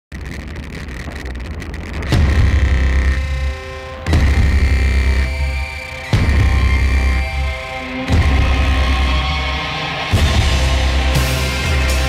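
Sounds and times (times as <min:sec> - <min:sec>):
deep bass and synth tones: 0:00.1 - 0:12.0
electronic music: 0:00.1 - 0:12.0.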